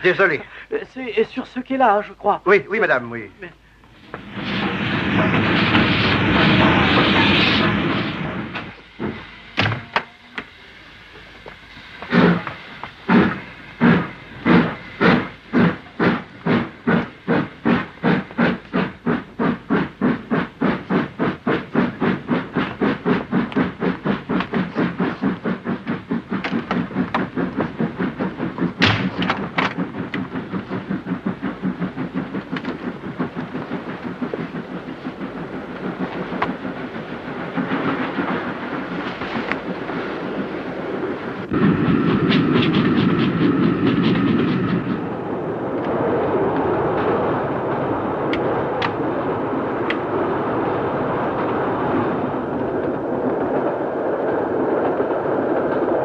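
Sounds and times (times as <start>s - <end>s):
steam locomotive chuffing: 0.0s - 56.0s
train running rumble: 0.0s - 56.0s.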